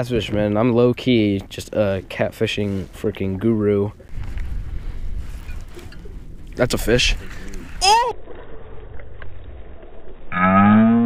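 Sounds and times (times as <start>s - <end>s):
water around boat: 0.0s - 11.0s
wind: 0.0s - 11.0s.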